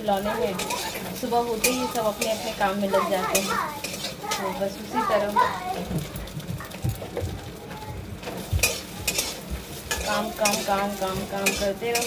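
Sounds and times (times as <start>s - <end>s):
food sizzling: 0.0s - 12.0s
ladle scraping in pan: 0.3s - 5.5s, 8.2s - 12.0s.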